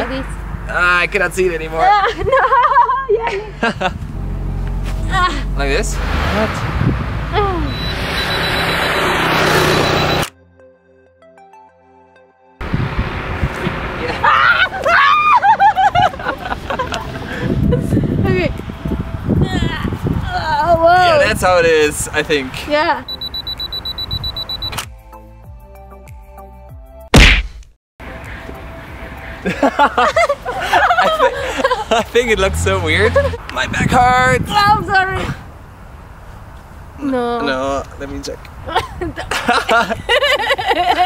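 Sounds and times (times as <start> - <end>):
loud whoosh: 4.0 - 10.2
wind buffeting microphone: 6.2 - 7.7, 12.6 - 14.8, 15.8 - 22.2, 33.1 - 37.0
camera self-timer beeping: 23.1 - 24.8.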